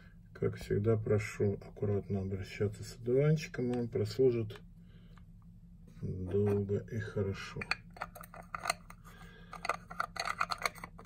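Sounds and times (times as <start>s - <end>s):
lens cap clicking and scraping: 7.6s - 11.0s.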